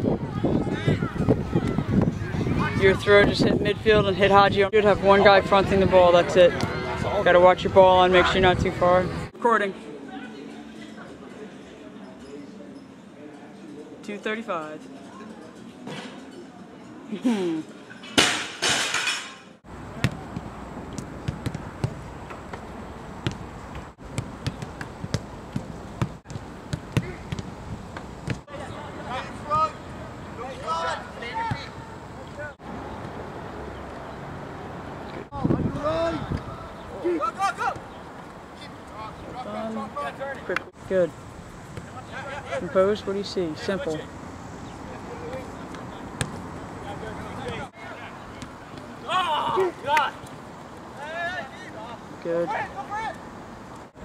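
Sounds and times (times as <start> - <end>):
outdoor background hiss: 0.0 - 54.0
ball kick thuds: 20.0 - 22.6, 23.2 - 28.5, 45.3 - 46.4.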